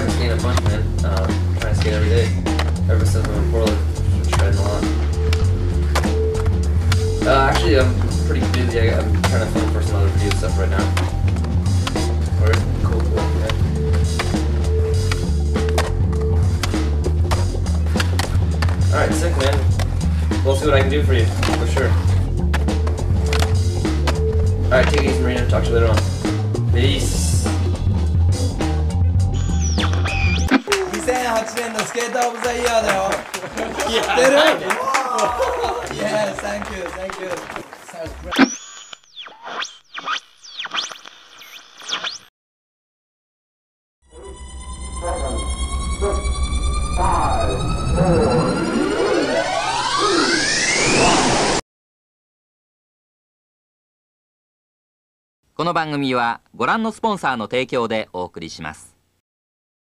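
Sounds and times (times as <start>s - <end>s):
music with heavy bass: 0.0s - 31.3s
electronic swooping pitch glides: 29.2s - 30.7s, 38.3s - 42.3s, 44.2s - 51.6s.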